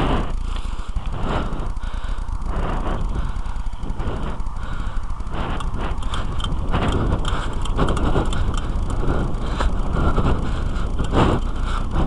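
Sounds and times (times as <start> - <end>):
rumble and rattle on dirt track: 0.0 - 12.0.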